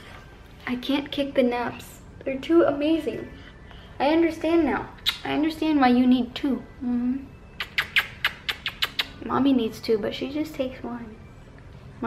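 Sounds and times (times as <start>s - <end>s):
quick kisses lip smacks: 5.0s - 5.3s, 7.6s - 9.2s.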